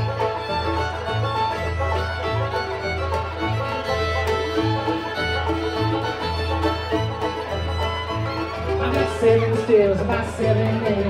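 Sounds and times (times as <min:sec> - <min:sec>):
banjo: 0:00.0 - 0:11.0
fiddle melody: 0:00.0 - 0:11.0.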